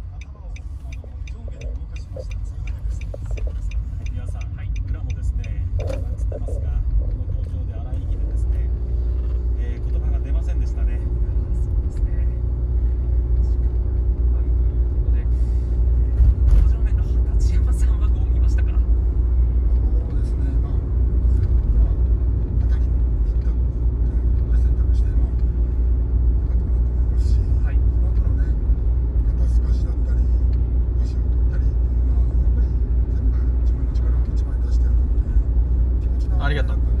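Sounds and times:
car cabin rumble: 0:00.0 - 0:37.0.

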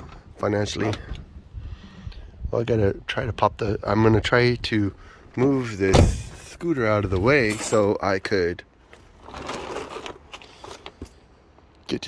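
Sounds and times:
rustling crunching handling noise: 0:08.7 - 0:11.8.

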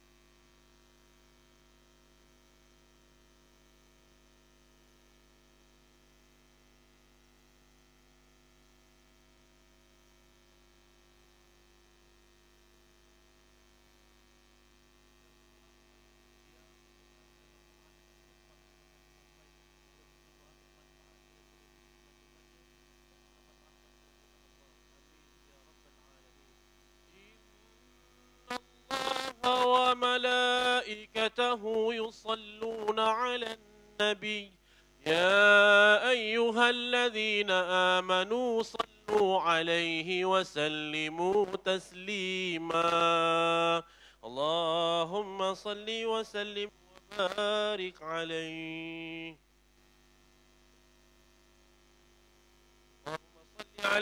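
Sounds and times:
faint electrical hum: 0:00.0 - 0:54.0.

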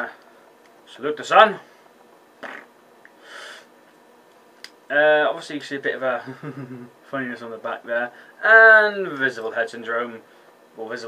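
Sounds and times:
man breathing through nose: 0:03.2 - 0:03.7.

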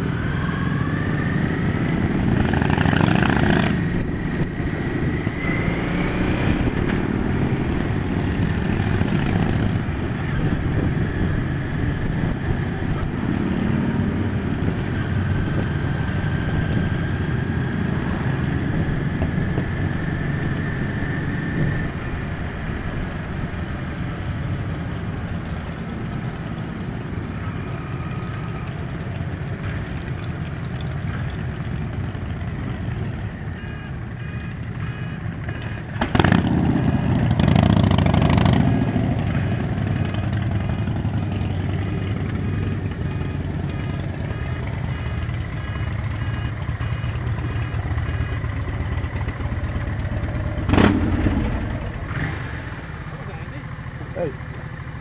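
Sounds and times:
motorcycle engines running: 0:00.0 - 0:55.0
wind noise on microphone: 0:03.8 - 0:13.3.

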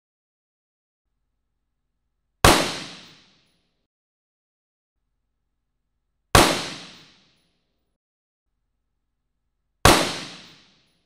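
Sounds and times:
rifle shot with echo: 0:02.5 - 0:03.2, 0:06.4 - 0:07.2, 0:09.9 - 0:10.8.

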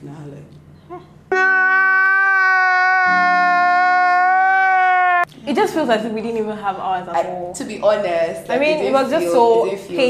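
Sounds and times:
man crying wail: 0:01.3 - 0:05.3.

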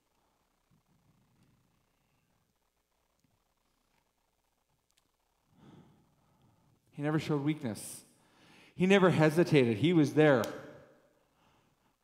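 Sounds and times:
man breathing softly: 0:05.5 - 0:06.9, 0:08.2 - 0:08.8, 0:11.2 - 0:12.0.

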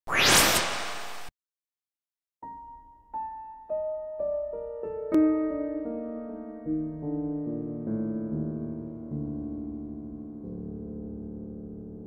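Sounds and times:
whoosh with rising sweep: 0:00.0 - 0:01.3.

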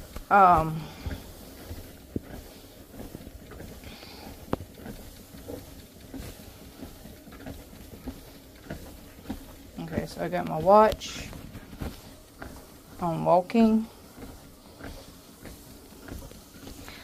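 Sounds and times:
soft footfalls: 0:00.0 - 0:17.0
treadmill motor and belt hum: 0:00.0 - 0:17.0.

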